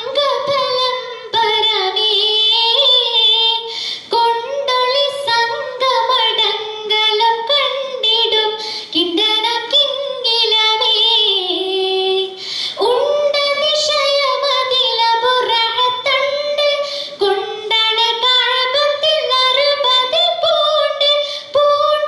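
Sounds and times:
girl singing into microphone: 0.0 - 22.0.

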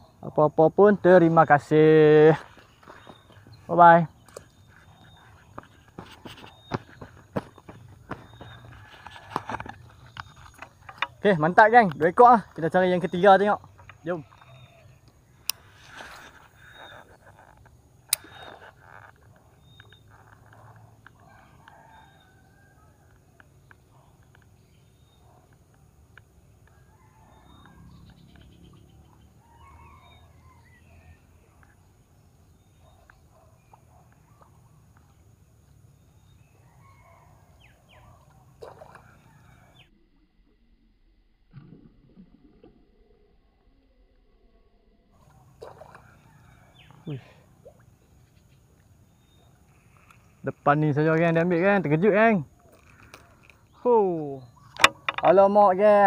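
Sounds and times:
small birds calling: 0.0 - 39.9, 45.2 - 56.0.

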